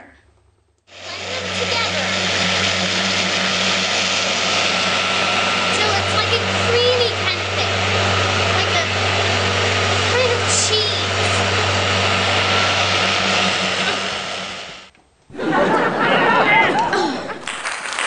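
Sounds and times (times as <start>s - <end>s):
blender whirring liquid: 0.9s - 14.9s.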